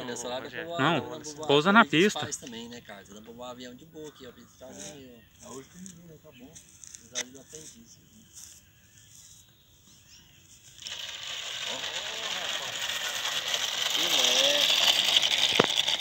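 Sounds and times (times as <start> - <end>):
small wheels rolling on asphalt: 0.0 - 16.0.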